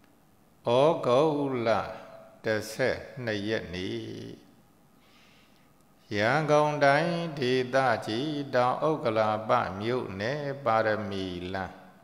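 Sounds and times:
monk chanting: 0.6s - 4.6s, 6.0s - 12.0s.

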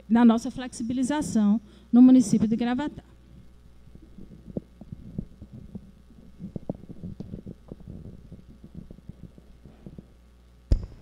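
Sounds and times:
microphone handling noise: 3.8s - 11.0s.

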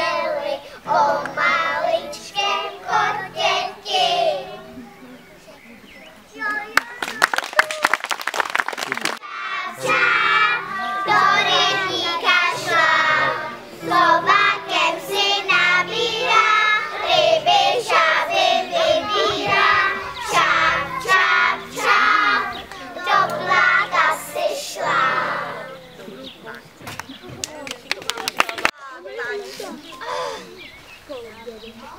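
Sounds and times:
children singing: 0.0s - 4.8s, 9.2s - 26.0s
quick clapping: 6.5s - 9.2s, 27.0s - 28.7s.

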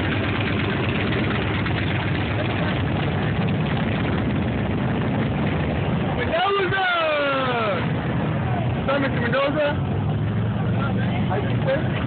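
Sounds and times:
motorcycle engines idling: 0.0s - 12.0s.

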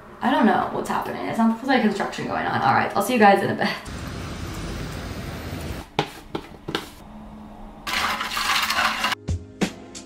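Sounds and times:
water pouring into a tumbler: 7.9s - 9.2s.

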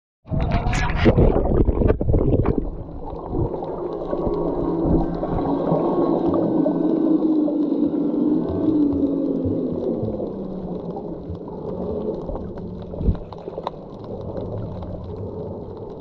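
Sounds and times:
low underwater hum: 0.3s - 16.0s
light crackling: 2.4s - 16.0s.

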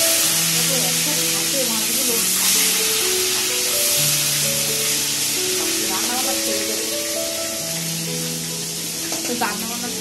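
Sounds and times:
background music of held notes: 0.0s - 10.0s
food sizzling in a pan: 0.0s - 10.0s.

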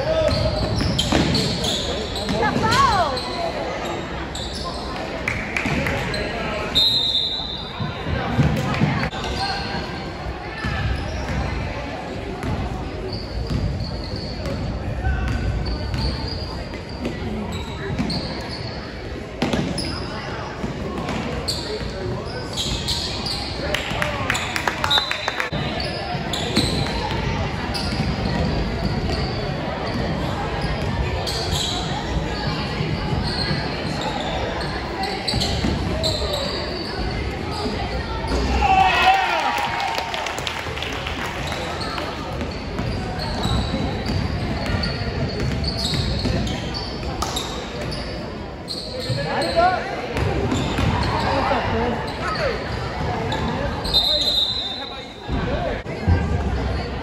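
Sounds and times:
sneaker squeaks: 0.0s - 38.8s, 41.1s - 55.7s
murmur of voices: 0.0s - 57.0s
basketball bouncing on court: 13.4s - 16.2s, 42.3s - 48.0s, 50.2s - 51.2s.

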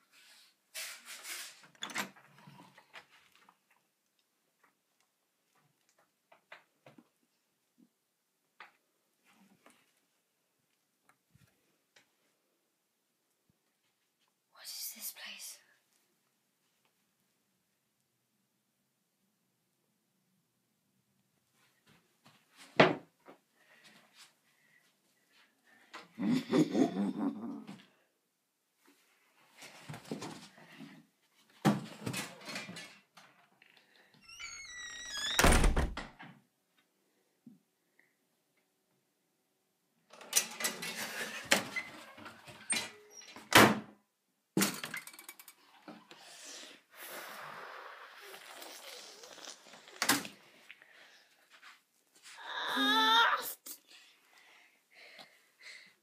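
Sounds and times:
person whispering: 14.6s - 15.8s
door hinges creaking: 34.2s - 36.0s
door shutting with heavy thud: 35.2s - 36.1s.

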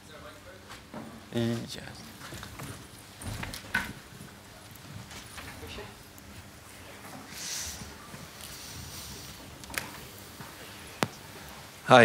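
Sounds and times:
man speaking: 1.3s - 2.2s.

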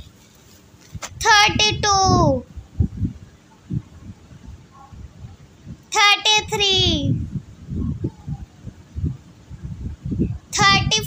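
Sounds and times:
child speaking: 1.2s - 2.5s, 5.9s - 7.2s, 10.5s - 11.0s.

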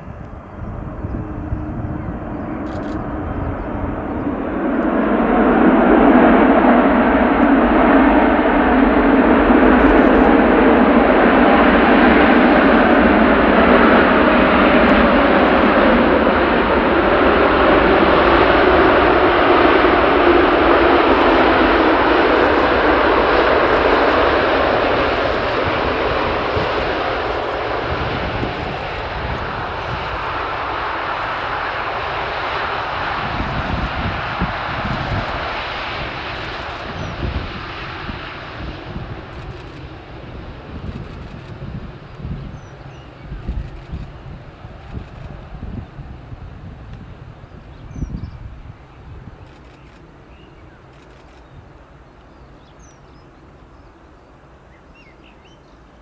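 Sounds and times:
jet engines roaring: 0.0s - 56.0s.

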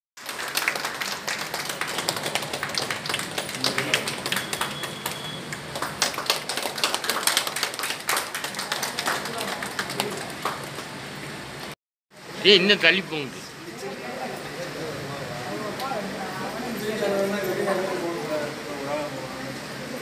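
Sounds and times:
audience clapping: 0.2s - 11.8s.

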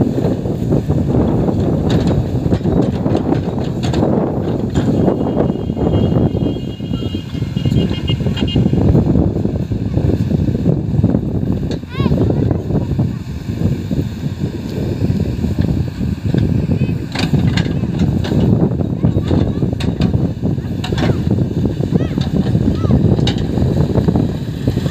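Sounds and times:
diesel engine running under load: 0.0s - 24.9s
backhoe digging soil: 0.1s - 5.3s, 11.3s - 24.9s.

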